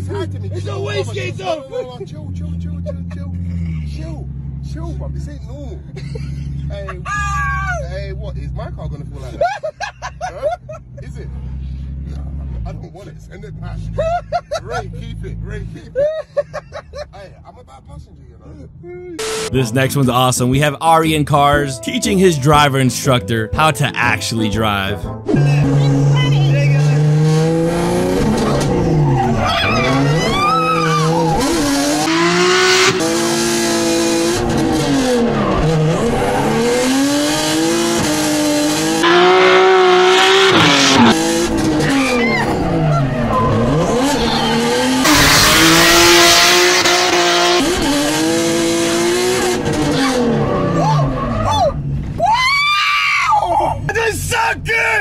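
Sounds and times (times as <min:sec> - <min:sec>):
woman screaming: 0:07.1 - 0:07.8, 0:29.4 - 0:31.3, 0:50.8 - 0:53.8
car engine revving: 0:25.2 - 0:52.2
tyre squeal: 0:28.5 - 0:31.7, 0:41.8 - 0:45.5.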